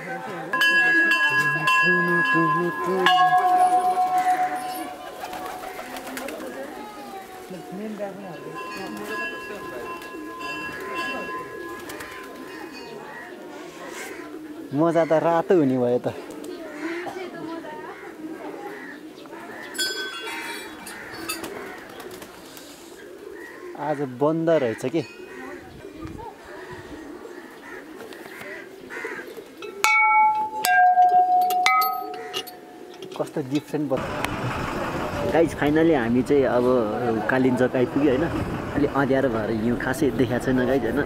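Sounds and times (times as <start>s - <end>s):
murmur of voices: 0.0s - 29.8s
pigeons cooing: 0.0s - 33.6s
struck bell ringing: 0.5s - 6.2s, 8.1s - 13.0s, 19.8s - 21.4s, 29.6s - 32.9s
person's voice: 35.2s - 41.0s.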